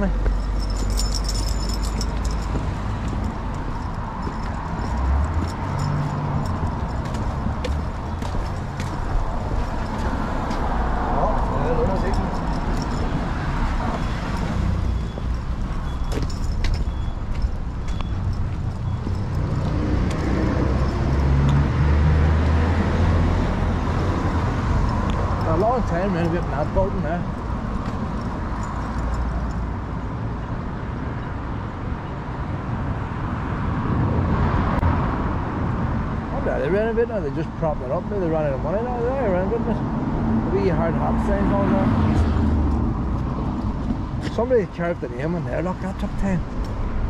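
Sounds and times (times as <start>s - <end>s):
car driving past: 18.9s - 25.5s.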